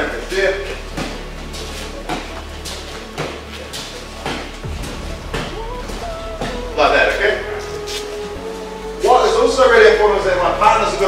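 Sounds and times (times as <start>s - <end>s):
voices in training hall: 0.0s - 11.0s.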